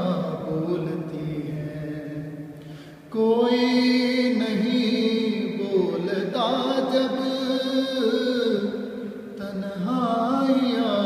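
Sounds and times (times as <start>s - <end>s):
man singing: 0.0s - 11.0s.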